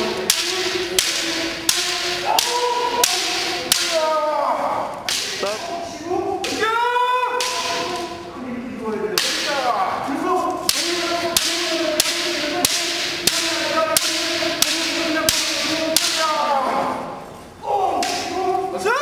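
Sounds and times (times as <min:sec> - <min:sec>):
bamboo sword strikes clacking: 0:00.0 - 0:04.1, 0:05.0 - 0:05.6, 0:07.4 - 0:08.2, 0:09.2 - 0:09.8, 0:10.7 - 0:16.5, 0:18.0 - 0:18.3
long held shouts: 0:01.3 - 0:05.0.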